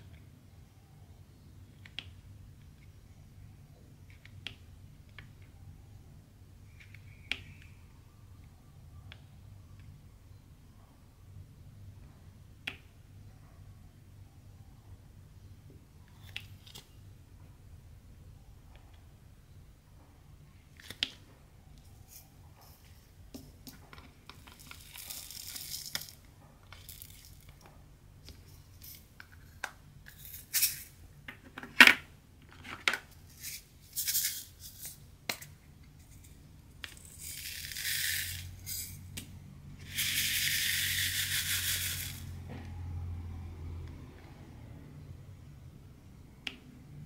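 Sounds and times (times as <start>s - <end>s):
resin beads rattling into plastic tray: 24.3s - 26.2s, 26.8s - 27.6s, 36.8s - 39.0s, 39.8s - 42.3s.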